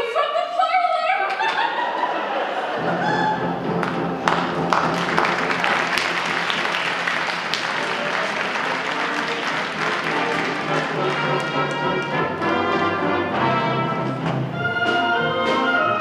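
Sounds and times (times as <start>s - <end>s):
audience applauding: 1.5s - 13.0s
orchestra playing: 2.6s - 16.0s
brass: 2.8s - 16.0s.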